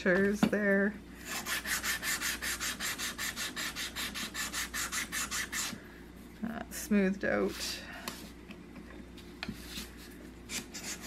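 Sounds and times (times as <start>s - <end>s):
sandpaper rubbing on wood: 1.3s - 5.7s.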